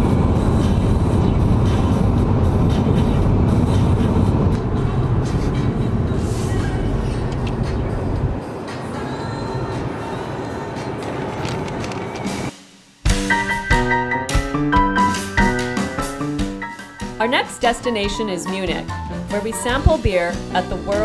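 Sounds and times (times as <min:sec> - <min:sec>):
car road and wind noise: 0:00.0 - 0:12.5.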